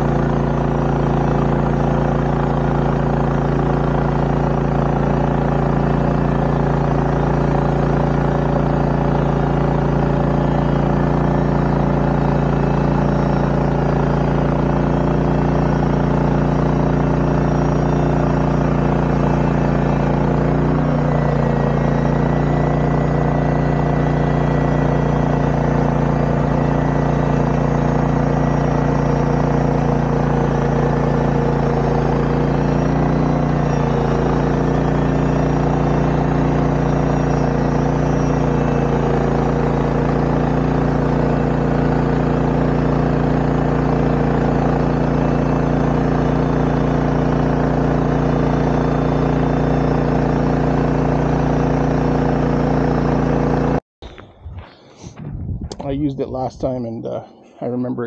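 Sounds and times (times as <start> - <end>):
gas engine running steadily: 0.0 - 58.0.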